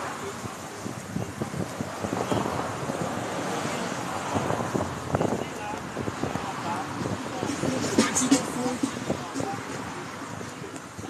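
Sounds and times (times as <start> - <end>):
man's voice: 0.0 - 11.0
road traffic: 0.0 - 11.0
wind noise on microphone: 0.0 - 11.0.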